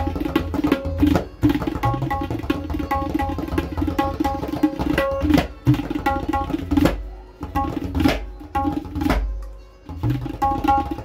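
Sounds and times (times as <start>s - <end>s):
tabla ringing strokes: 0.0s - 11.0s.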